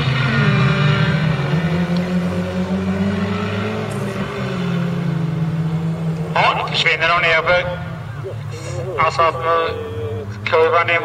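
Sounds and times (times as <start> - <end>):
race car engines running hard: 0.0 - 11.0.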